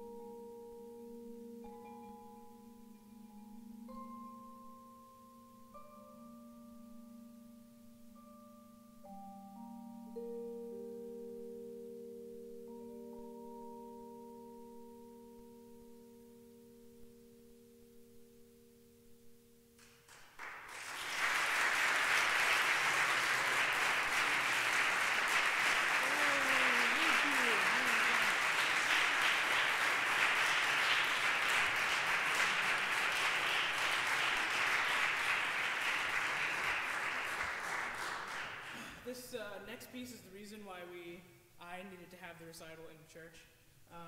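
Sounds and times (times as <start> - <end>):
audience applause: 20.1 - 38.9
audience whooping: 20.7 - 37.6.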